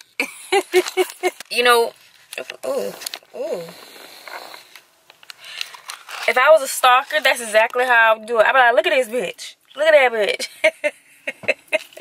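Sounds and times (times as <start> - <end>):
camera handling rustle and clicks: 0.7 - 3.2, 4.2 - 6.3.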